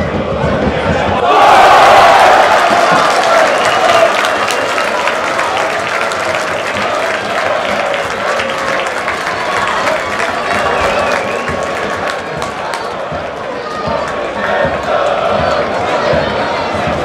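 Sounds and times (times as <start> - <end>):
crowd cheering and clapping: 1.1 - 17.0
people shouting: 1.2 - 5.5.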